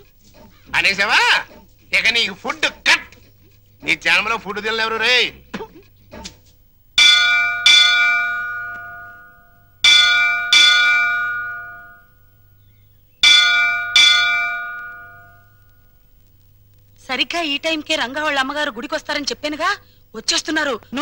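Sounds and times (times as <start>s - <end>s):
temple bell strokes: 7.0s - 12.6s, 13.2s - 16.0s.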